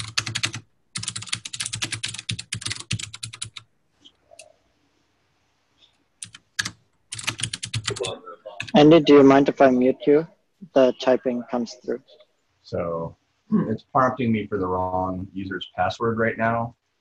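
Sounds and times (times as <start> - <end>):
fast keyboard typing: 0.0 - 3.7, 6.2 - 8.9.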